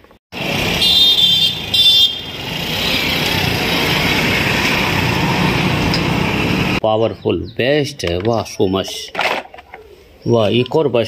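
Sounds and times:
vehicle engines rumbling: 0:00.0 - 0:08.6.

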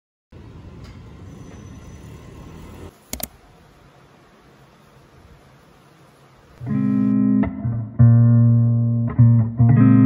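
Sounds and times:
distant city traffic rumble: 0:00.3 - 0:06.6
outdoor air noise: 0:00.3 - 0:08.0.

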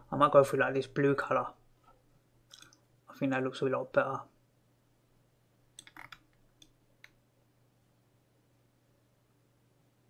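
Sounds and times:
faint steady hum: 0:00.0 - 0:10.0
computer mouse clicking: 0:05.8 - 0:07.2.

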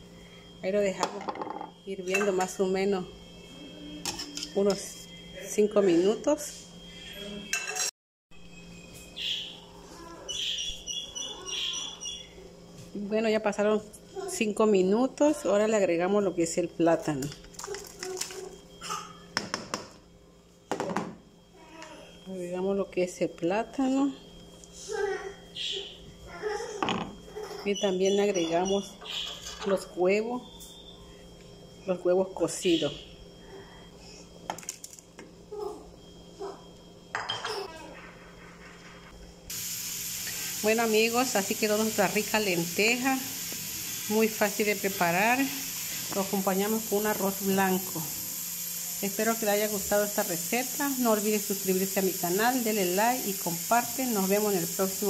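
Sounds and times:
faint steady hum: 0:00.0 - 0:07.6.

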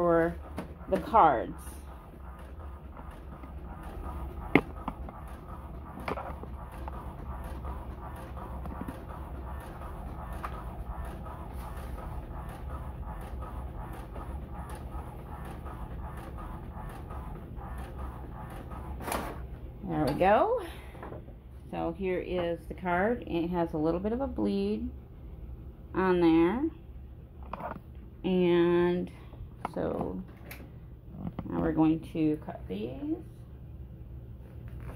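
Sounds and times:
printer whirring: 0:00.0 - 0:20.6.

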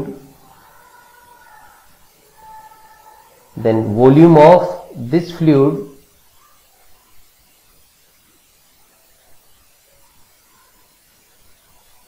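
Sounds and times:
man speaking: 0:00.0 - 0:00.3, 0:03.6 - 0:06.0
faint steady high tones: 0:00.0 - 0:12.0.

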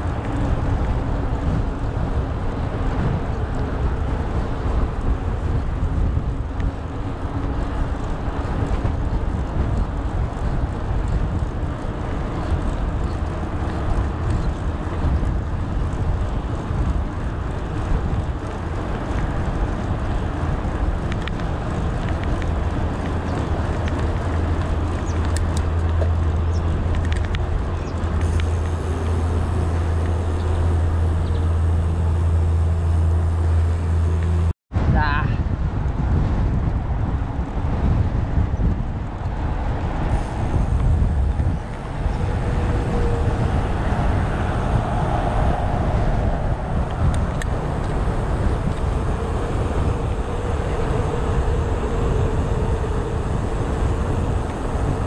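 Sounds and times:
bike tyres rolling on asphalt: 0:00.0 - 0:34.5, 0:35.4 - 0:55.0
steady low hum: 0:00.0 - 0:34.5, 0:39.4 - 0:55.0
wind on camera microphone: 0:00.0 - 0:55.0.

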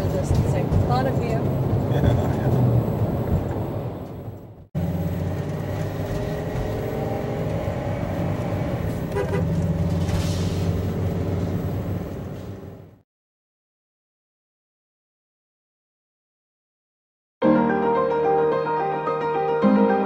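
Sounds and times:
road and engine noise in vehicle: 0:00.0 - 0:13.0.

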